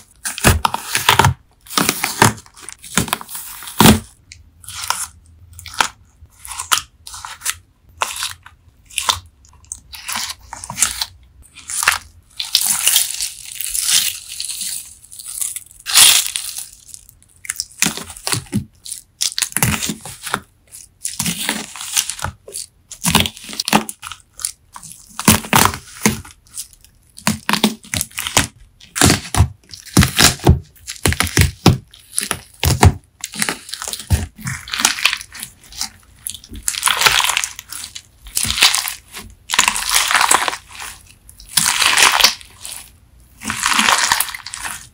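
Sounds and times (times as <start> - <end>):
crackling and crunching sponge pieces: 0.0 - 44.9.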